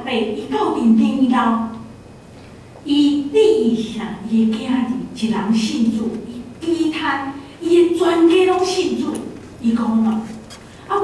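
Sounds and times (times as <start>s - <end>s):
woman preaching: 0.0s - 1.9s, 2.8s - 11.0s.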